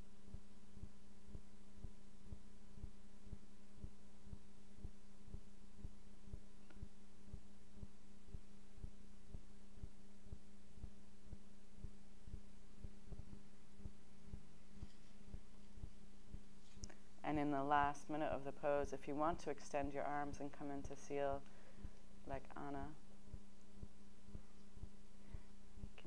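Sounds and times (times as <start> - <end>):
low pulsing hum: 0.0 - 26.0.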